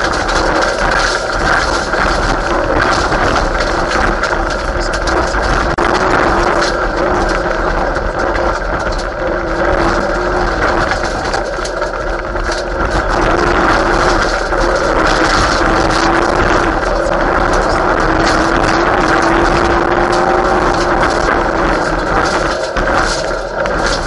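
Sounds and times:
rally car engine running hard: 0.0s - 24.0s
stones ticking: 0.0s - 24.0s
tyre and gravel noise: 0.0s - 24.0s.

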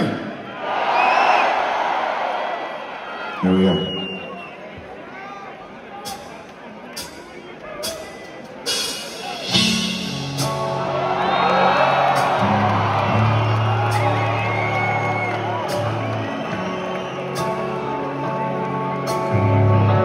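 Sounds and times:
crowd cheering and whistling: 0.3s - 6.4s, 7.0s - 20.0s
band playing long low notes: 8.7s - 20.0s.

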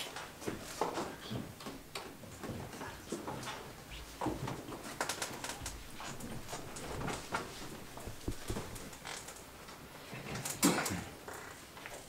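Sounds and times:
slow footsteps on wooden floor: 0.4s - 9.2s
walking cane tapping on wood: 0.4s - 9.4s.

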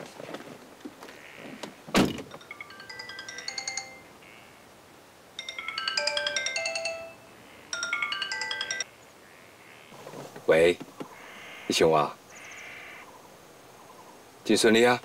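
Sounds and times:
sharp thunk: 2.0s - 2.3s
phone ringtone with chiming notes: 2.4s - 4.1s, 5.4s - 8.9s.

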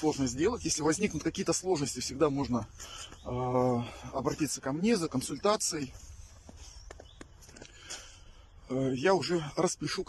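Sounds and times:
footsteps on snow: 0.0s - 8.2s.

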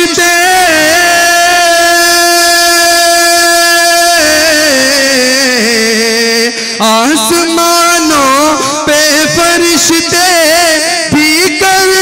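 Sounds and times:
man singing solo: 0.0s - 12.0s.

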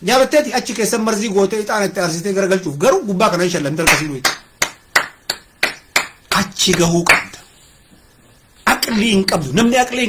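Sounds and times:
sharp knocks: 3.9s - 7.4s.

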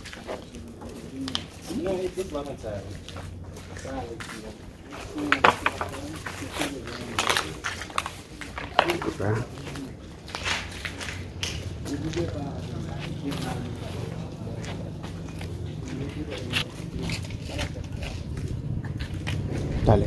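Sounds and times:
voices talking: 0.0s - 20.0s.

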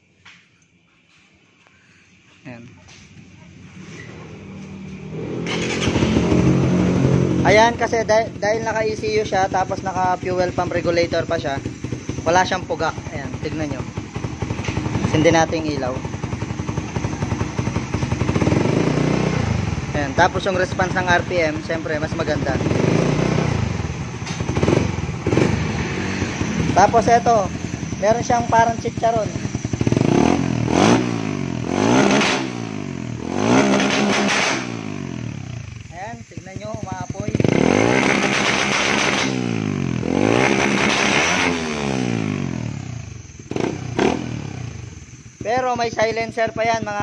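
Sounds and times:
motorcycle engine starting and revving: 3.1s - 47.0s.

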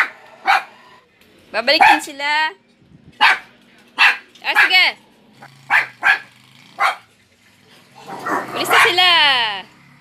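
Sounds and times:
dog barking: 0.0s - 0.8s, 1.8s - 2.1s, 3.2s - 4.8s, 5.7s - 7.1s, 8.0s - 9.0s.

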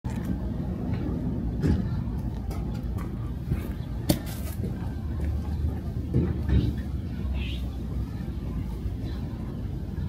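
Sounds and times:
low outdoor rumble: 0.1s - 10.0s.

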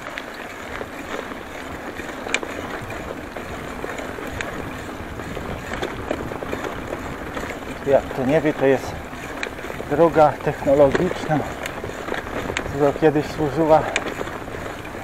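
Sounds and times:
bicycle tyres rolling on concrete: 0.0s - 15.0s
bike clicking: 0.0s - 15.0s.

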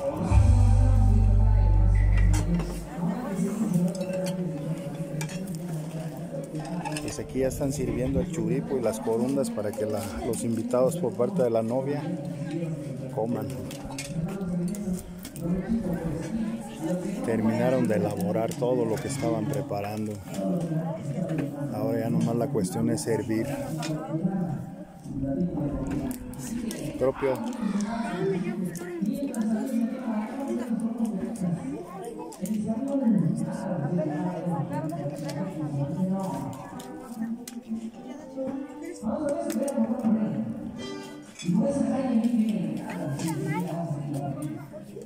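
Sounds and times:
background chatter: 0.0s - 45.0s.

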